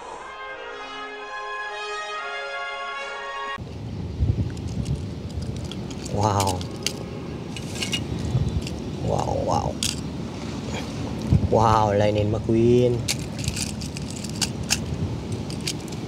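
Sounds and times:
orchestral film music: 0.0s - 3.6s
toy cars clicking and clattering: 4.5s - 7.0s, 9.7s - 10.0s, 13.0s - 16.0s.

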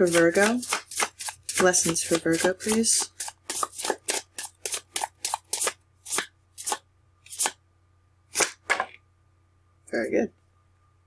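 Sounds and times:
cards being shuffled: 0.0s - 7.6s, 8.3s - 9.0s.

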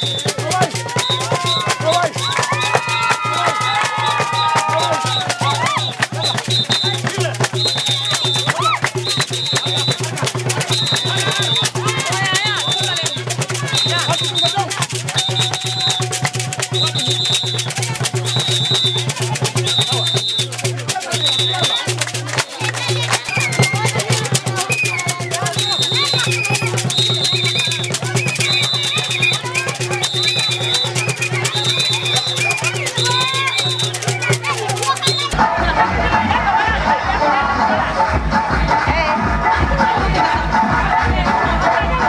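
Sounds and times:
hand clapping: 0.0s - 35.4s
rattling shakers: 0.0s - 35.4s
crowd voices: 0.0s - 42.0s.

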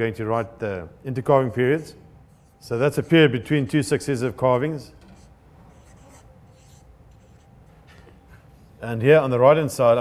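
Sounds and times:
marker writing on paper: 5.0s - 7.5s.

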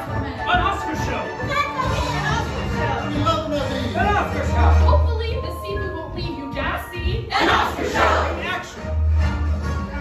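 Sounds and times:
music in a large room: 0.0s - 10.0s
overlapping voices: 7.3s - 8.8s.

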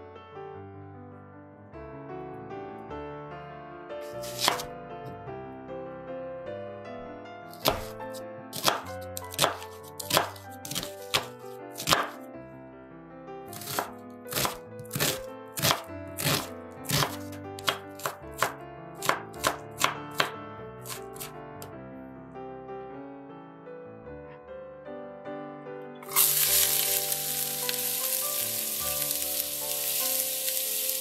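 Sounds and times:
knife chopping on wooden board: 4.2s - 4.7s, 7.5s - 12.2s, 13.5s - 21.3s.

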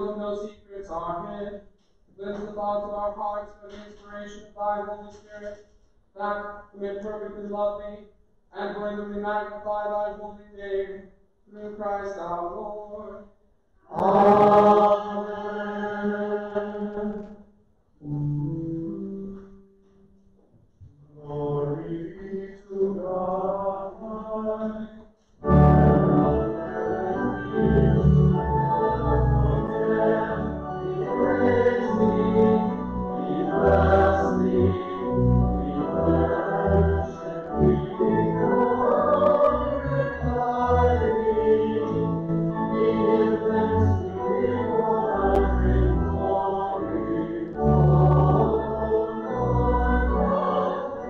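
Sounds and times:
person chanting: 0.0s - 1.6s, 13.9s - 17.2s, 21.0s - 51.0s
organ chords: 13.8s - 17.4s, 18.0s - 24.8s, 25.4s - 51.0s
choir singing sacred song: 13.9s - 17.4s, 21.0s - 51.0s.

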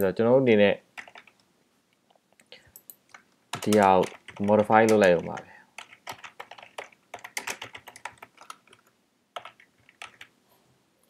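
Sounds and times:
typing on computer keyboard: 1.0s - 1.4s, 2.8s - 10.3s.

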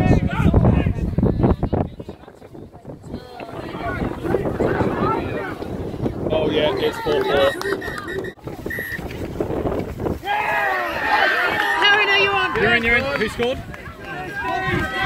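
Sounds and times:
voices calling and shouting: 0.0s - 15.0s
wind rumbling on microphone: 0.0s - 15.0s.

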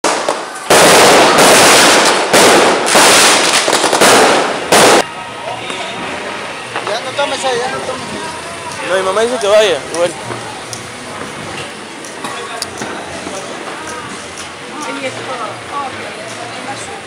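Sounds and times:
fireworks barrage: 0.0s - 15.4s
people's voices: 4.5s - 17.0s.

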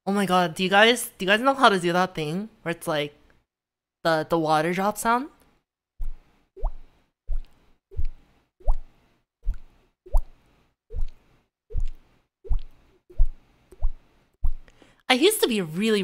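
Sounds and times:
mouth-made water-drop plops: 8.0s - 8.9s, 9.5s - 10.3s.

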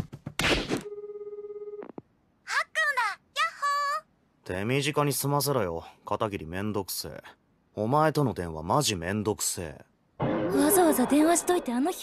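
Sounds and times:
telephone ringback tone: 0.8s - 1.9s.

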